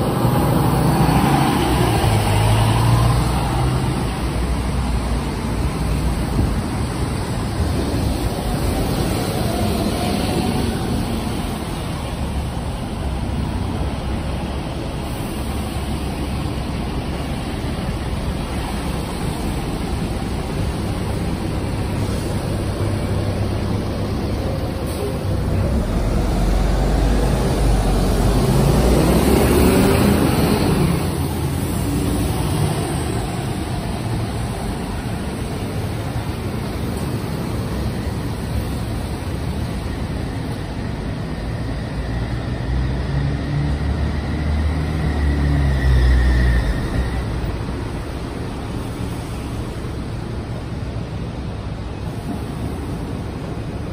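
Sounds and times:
bus engine rumble: 0.0 - 53.9
buses and cars passing: 0.0 - 53.9
steady road hum: 0.0 - 53.9.

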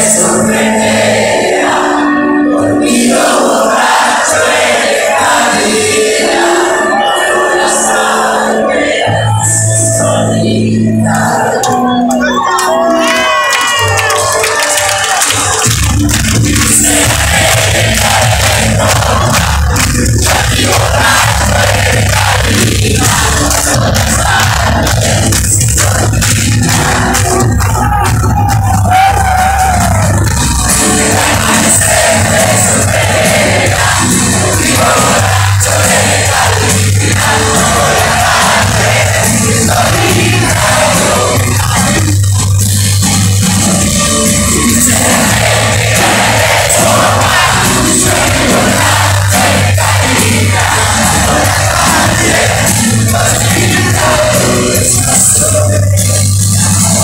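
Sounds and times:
audience cheering and singing along: 0.0 - 57.0
rock band playing live: 5.6 - 57.0.

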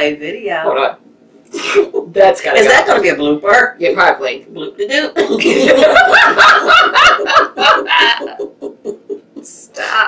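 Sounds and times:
women laughing loudly: 5.3 - 9.6.

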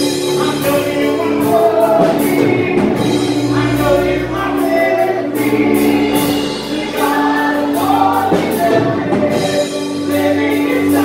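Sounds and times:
strummed guitar: 0.0 - 11.0
sustained keyboard chords: 0.0 - 11.0
woman and man singing: 0.0 - 11.0.

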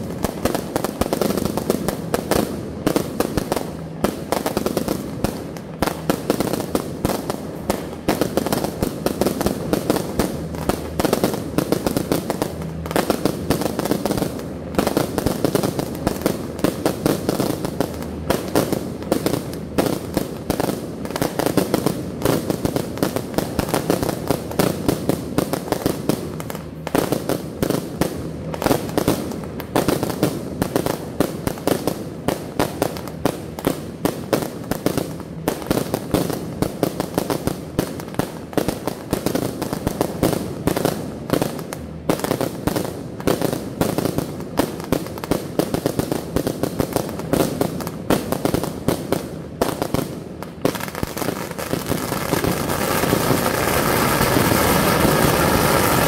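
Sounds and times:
firecrackers crackling: 0.0 - 56.0.

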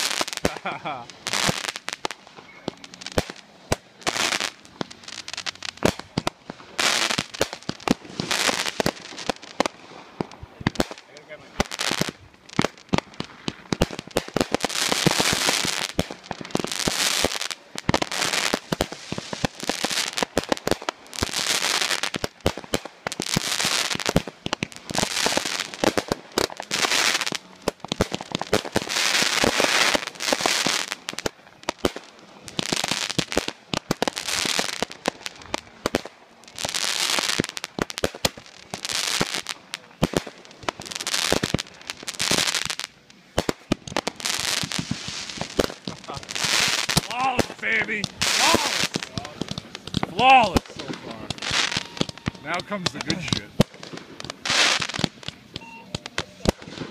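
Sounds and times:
fireworks crackling: 0.0 - 56.9
fireworks popping: 0.0 - 56.9.

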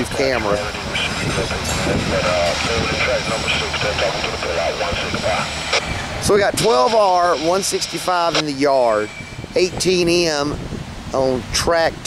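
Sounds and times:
freight train rolling on rails: 0.0 - 11.2.

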